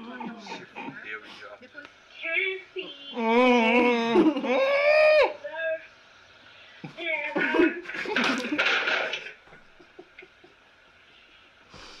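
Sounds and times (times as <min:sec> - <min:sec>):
clattering sounds: 0:08.0 - 0:09.6.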